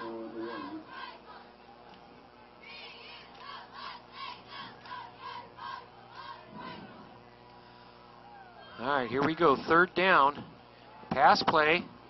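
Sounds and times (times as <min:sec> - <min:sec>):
crowd chanting rhythmic cheer: 0:00.0 - 0:07.2.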